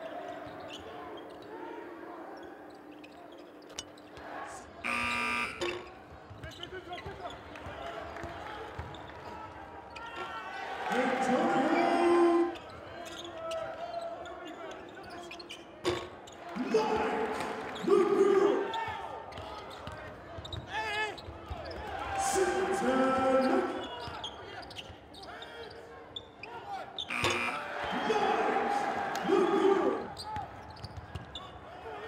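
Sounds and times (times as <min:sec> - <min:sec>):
arena buzzer: 0:04.8 - 0:05.9, 0:27.0 - 0:30.1
players shouting: 0:06.9 - 0:15.2, 0:16.3 - 0:24.6, 0:26.5 - 0:30.7.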